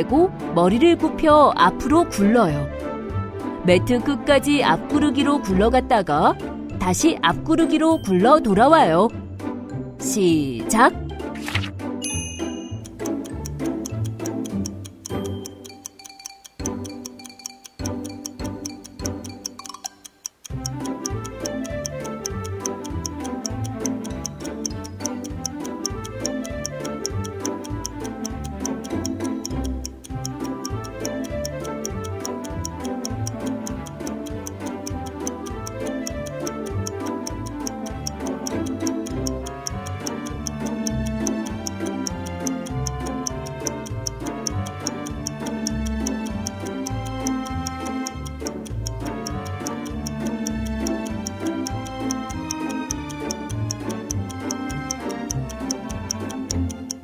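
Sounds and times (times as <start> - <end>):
upbeat background music: 0.0 - 57.0
rapid clock-like ticking: 3.7 - 6.4, 12.5 - 57.0.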